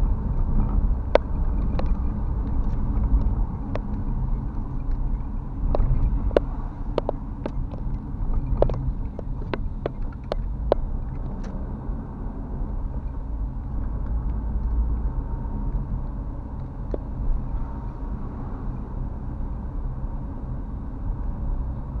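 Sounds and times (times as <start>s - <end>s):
car engine and road rumble: 0.0s - 22.0s
turn signal ticking: 0.1s - 11.8s, 12.5s - 19.8s.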